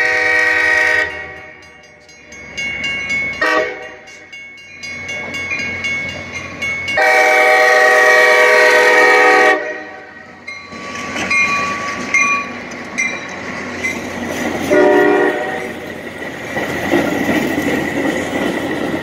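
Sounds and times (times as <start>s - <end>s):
train horn blasts: 0.0s - 1.6s, 3.4s - 4.1s, 7.0s - 10.2s, 14.7s - 15.8s
crossing bell dinging: 0.0s - 8.6s, 9.8s - 15.9s
train rumbling and clacking past: 0.0s - 19.0s.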